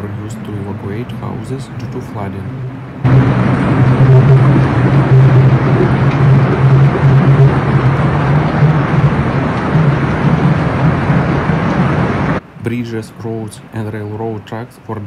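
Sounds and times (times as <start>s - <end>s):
floodwater torrent rushing: 0.0s - 15.0s.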